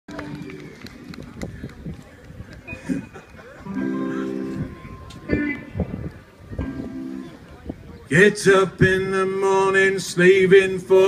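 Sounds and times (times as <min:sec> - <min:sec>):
people talking: 0:00.1 - 0:09.5.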